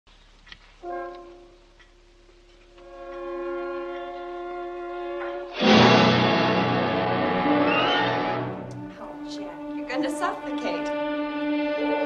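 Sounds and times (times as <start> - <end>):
orchestra holding a chord: 0.8 - 1.8, 2.8 - 12.0.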